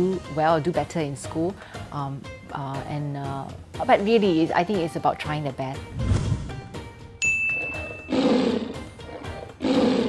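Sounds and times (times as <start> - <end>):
tiger roar sound effect: 7.6 - 10.0.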